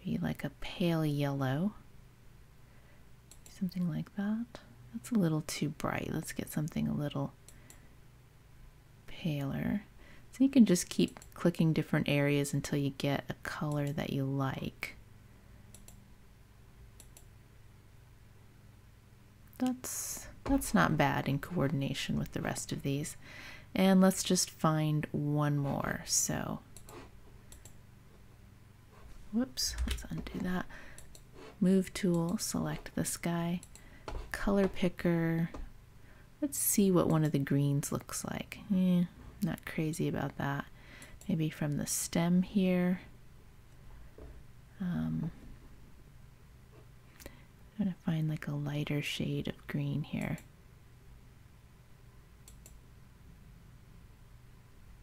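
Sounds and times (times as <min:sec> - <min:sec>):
low room hum: 0:00.0 - 0:55.0
computer mouse clicks: 0:03.3 - 0:03.6, 0:10.9 - 0:11.4, 0:15.7 - 0:16.0, 0:17.0 - 0:17.3, 0:26.8 - 0:27.8, 0:29.8 - 0:31.3, 0:32.0 - 0:32.9, 0:33.5 - 0:34.9, 0:52.4 - 0:52.8.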